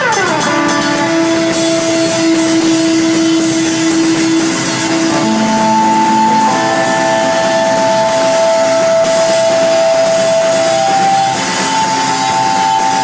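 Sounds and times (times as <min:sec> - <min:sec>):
cymbal strokes: 0:00.2 - 0:13.0
funk band playing: 0:00.3 - 0:13.0
long held mid-range notes: 0:00.5 - 0:13.0.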